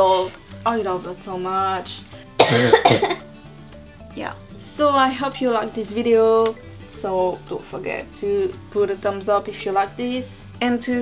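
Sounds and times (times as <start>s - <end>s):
quiet background music: 0.0s - 11.0s
woman coughing: 2.4s - 3.2s.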